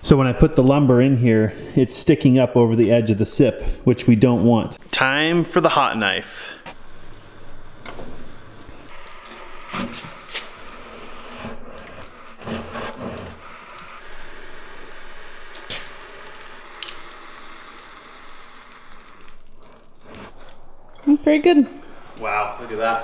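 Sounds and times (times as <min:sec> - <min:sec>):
hot knife melting foam: 0:04.9 - 0:21.1.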